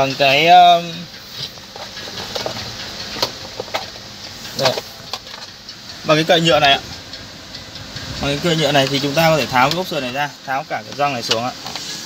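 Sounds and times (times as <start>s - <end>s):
car cabin hiss: 6.0s - 12.0s.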